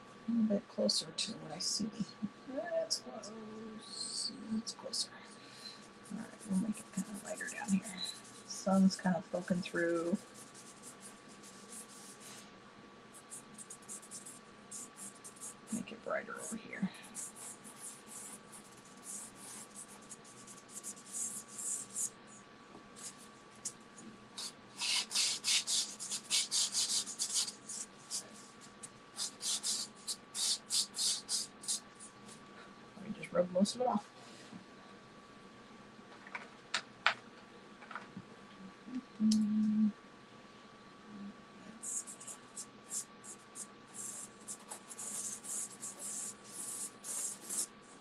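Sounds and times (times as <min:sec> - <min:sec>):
pastel strokes on paper: 0:06.0 - 0:12.5, 0:13.2 - 0:22.2, 0:24.4 - 0:31.8, 0:41.8 - 0:48.0.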